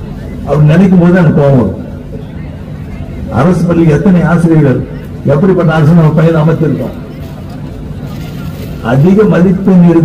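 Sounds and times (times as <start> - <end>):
man's amplified speech: 0.4 - 1.9, 3.3 - 7.2, 8.8 - 10.0.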